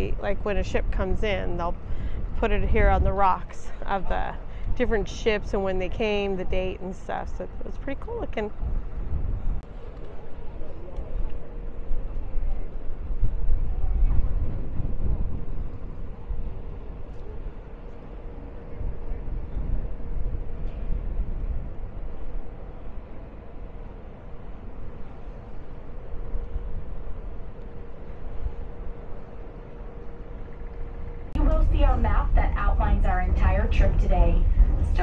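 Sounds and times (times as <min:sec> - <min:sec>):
steady hum: 0:00.0 - 0:35.0
wind buffeting microphone: 0:00.0 - 0:35.0.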